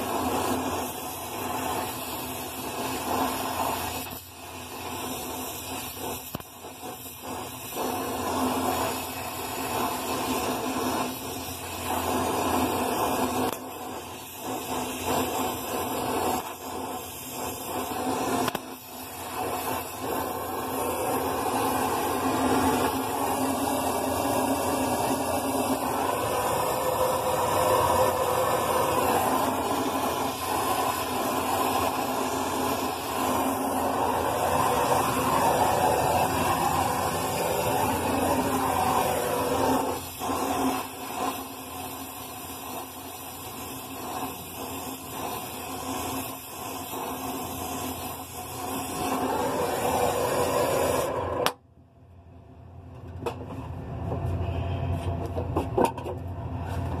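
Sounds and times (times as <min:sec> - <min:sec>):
torch flame hissing: 0:00.0 - 0:51.6.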